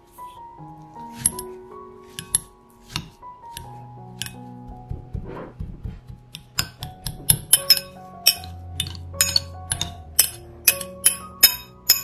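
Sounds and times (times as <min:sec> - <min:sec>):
soft background music: 0:00.0 - 0:12.0
potato masher clinking on glass bowl: 0:06.6 - 0:12.0.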